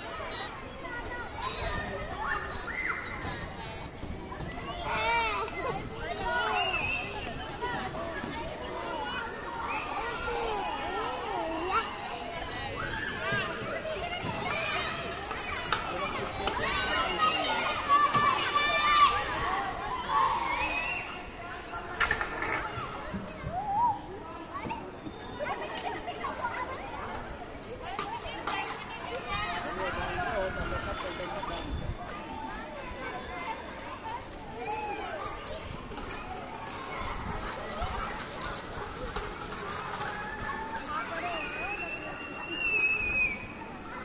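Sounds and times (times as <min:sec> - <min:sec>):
children calling and shouting: 0:00.0 - 0:44.0
child's high squeal: 0:20.2 - 0:21.2, 0:41.3 - 0:43.6.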